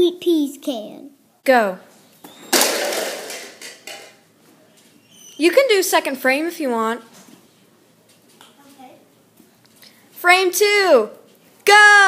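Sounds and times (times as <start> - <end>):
plastic cups clattering onto carpet: 2.3 - 4.2.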